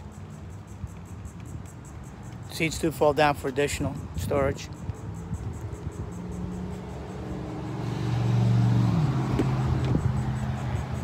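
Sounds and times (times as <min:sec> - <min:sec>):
vehicle passing by: 0:05.0 - 0:11.0.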